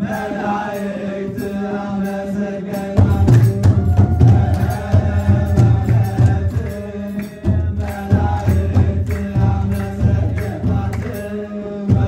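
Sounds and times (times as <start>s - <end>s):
men chanting a hymn: 0.0s - 12.0s.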